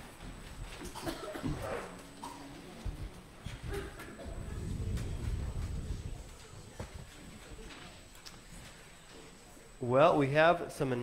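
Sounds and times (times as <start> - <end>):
murmur of voices: 1.5 - 11.0.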